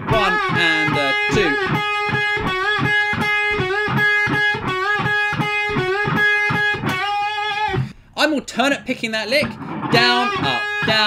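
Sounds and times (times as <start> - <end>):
electric guitar bending lick: 0.0 - 8.0, 9.4 - 11.0.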